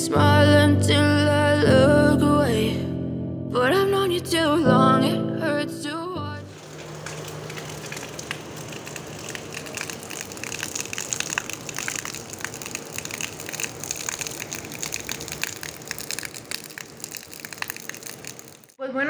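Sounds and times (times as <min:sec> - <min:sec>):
rain on pavement: 0:06.5 - 0:18.8.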